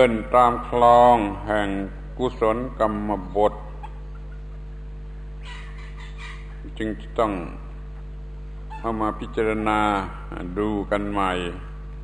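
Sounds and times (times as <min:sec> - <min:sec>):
low hum: 0:00.0 - 0:12.0
harsh bird calls: 0:05.4 - 0:06.7.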